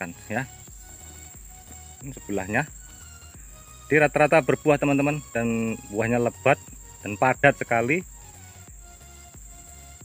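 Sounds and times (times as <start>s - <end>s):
high-pitched insect trill: 0.0s - 10.0s.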